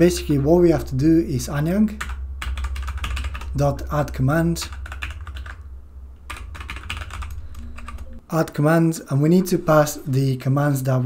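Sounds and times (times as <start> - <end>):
steady low hum: 0.0 - 11.0
keyboard typing clicks: 6.3 - 8.2.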